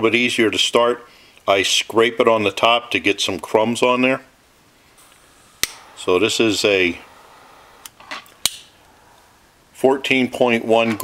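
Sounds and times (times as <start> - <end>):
lighter clicks: 5.0 - 6.0, 7.2 - 9.0.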